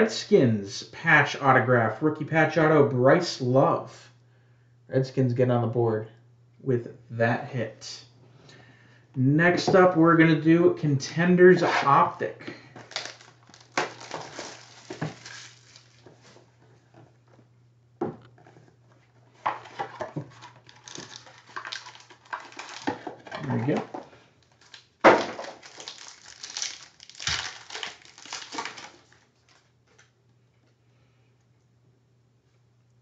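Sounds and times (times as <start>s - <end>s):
faint steady hum: 0.0s - 33.0s
foil packs crinkling and tearing: 12.8s - 16.4s, 19.6s - 23.8s, 24.4s - 29.7s.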